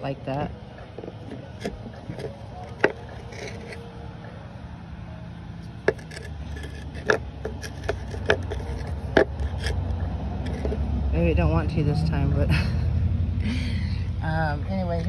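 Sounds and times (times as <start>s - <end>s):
rocks scraping: 0.3s - 4.5s, 5.6s - 11.0s.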